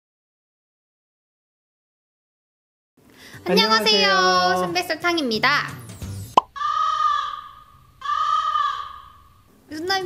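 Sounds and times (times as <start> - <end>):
crow cawing: 6.5 - 9.5.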